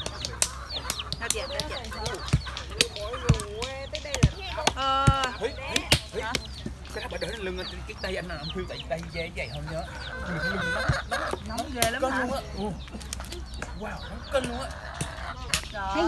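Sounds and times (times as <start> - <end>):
stones knocking on tree stumps: 0.0 - 7.1
chickens clucking: 0.0 - 16.0.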